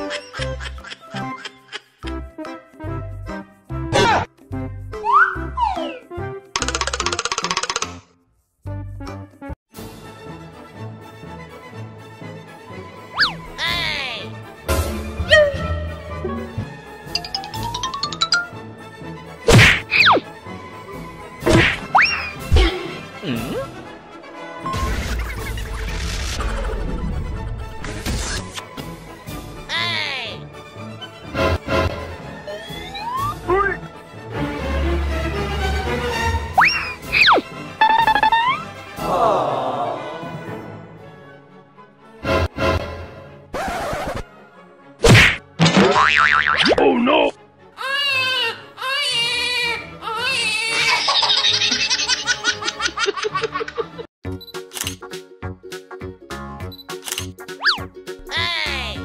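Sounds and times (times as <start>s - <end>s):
loud cartoon whack: 19.5s - 20.0s, 21.4s - 21.9s, 45.0s - 46.0s
cartoon boing: 46.0s - 46.8s.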